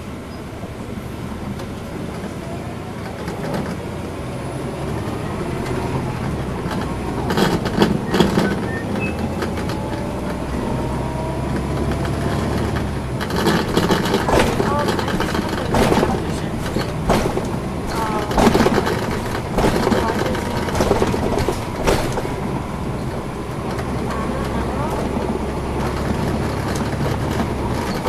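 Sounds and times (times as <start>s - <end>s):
bus diesel engine drone: 0.0s - 28.0s.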